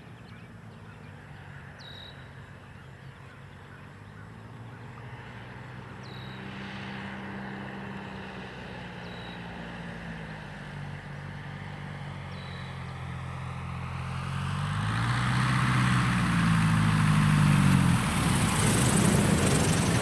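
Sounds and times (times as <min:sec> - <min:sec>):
light aircraft engine drone: 0:00.0 - 0:20.0.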